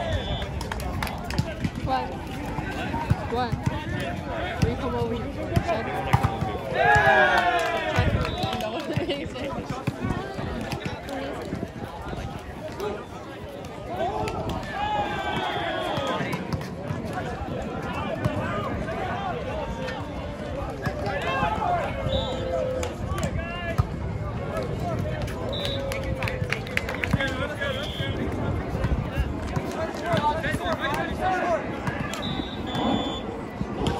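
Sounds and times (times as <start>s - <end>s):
crowd chatter: 0.0s - 33.9s
people shouting and calling out: 1.4s - 26.4s.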